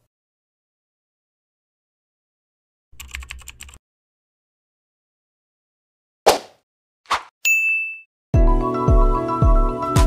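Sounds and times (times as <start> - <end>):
bright bell ding: 7.5 - 8.1
music with steady beat: 8.4 - 10.0.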